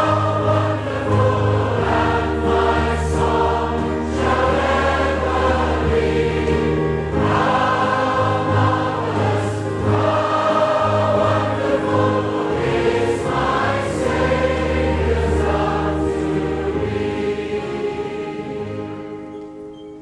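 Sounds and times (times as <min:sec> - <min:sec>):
choir singing a hymn: 0:00.0 - 0:19.5.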